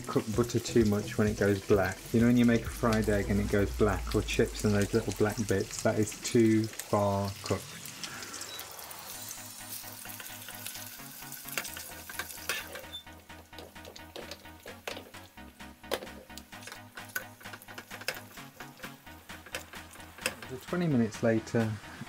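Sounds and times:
butter sizzling in a frying pan: 0:00.0 - 0:20.8
sharp crackles and clicks: 0:01.8 - 0:21.0.

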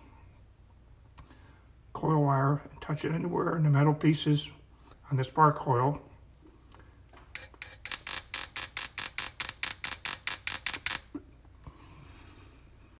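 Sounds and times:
spark coil snapping: 0:07.4 - 0:11.1.

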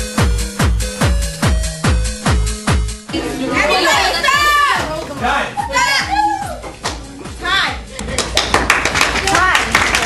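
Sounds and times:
electronic dance music: 0:00.0 - 0:07.9.

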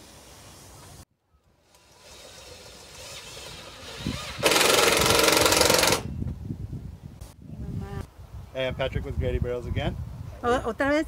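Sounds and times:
rapid mechanical rattling: 0:01.8 - 0:06.1.

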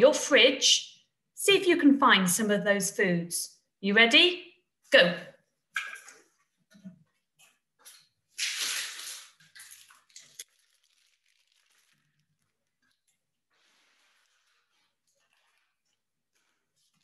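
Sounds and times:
rustling and scraping: 0:06.1 - 0:17.0.

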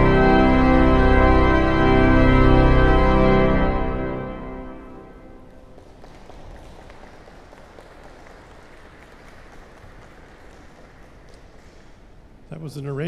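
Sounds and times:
audience applauding: 0:05.4 - 0:12.4.

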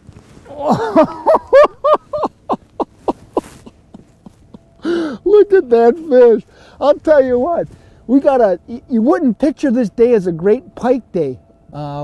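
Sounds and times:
man laughing: 0:00.5 - 0:06.4.

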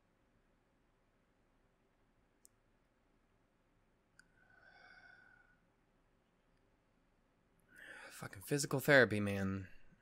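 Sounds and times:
faint click: 0:02.4 - 0:02.6, 0:04.1 - 0:04.4.

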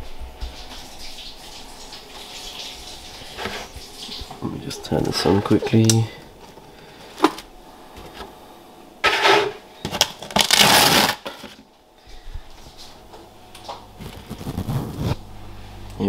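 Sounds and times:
rustling and rubbing on microphone: 0:14.0 - 0:15.3.

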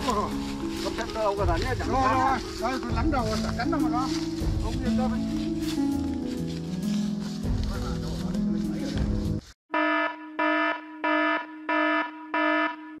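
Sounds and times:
background music: 0:00.0 - 0:09.6.

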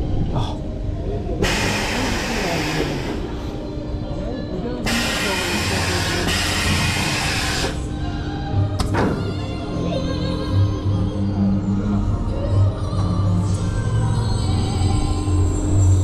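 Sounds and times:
loud hissing air blasts: 0:01.4 - 0:03.6, 0:04.9 - 0:07.9
roller coaster train on brakes: 0:01.4 - 0:03.6, 0:04.9 - 0:07.9.

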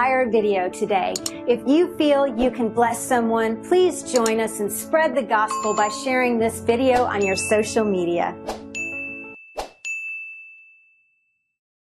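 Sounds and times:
background music: 0:00.0 - 0:09.7
notification ding: 0:05.5 - 0:06.2, 0:07.1 - 0:07.7.

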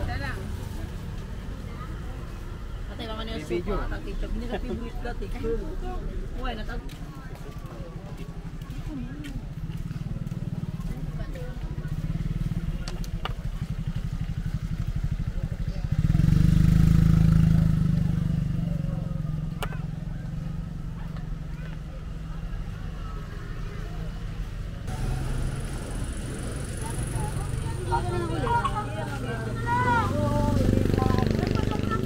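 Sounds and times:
low engine rumble: 0:00.0 - 0:32.0
vehicle passing close: 0:23.7 - 0:32.0.

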